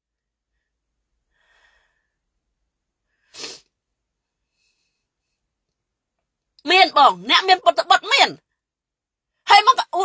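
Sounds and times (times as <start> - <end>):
woman's sharp breath: 1.3 - 2.2
woman talking: 6.6 - 8.4, 9.5 - 10.0.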